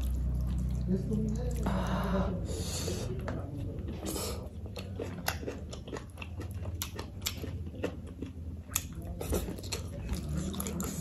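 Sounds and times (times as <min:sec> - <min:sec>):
wet chewing with clicks: 0:03.2 - 0:11.0.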